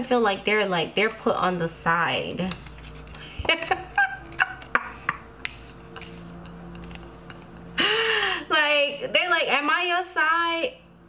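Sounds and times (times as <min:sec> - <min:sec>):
woman laughing: 0:03.2 - 0:05.3, 0:05.9 - 0:08.5.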